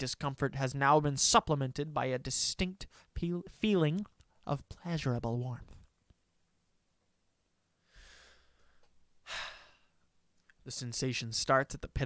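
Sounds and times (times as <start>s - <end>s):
man breathing: 7.8s - 10.0s.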